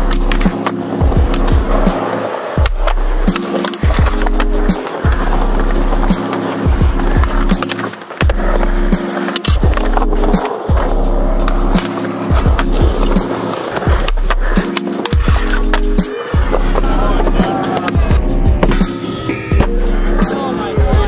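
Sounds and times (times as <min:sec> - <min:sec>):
skateboard clacks: 0:00.0 - 0:18.9
music with bass line: 0:00.0 - 0:21.0
skateboard wheels rolling on concrete: 0:00.0 - 0:21.0.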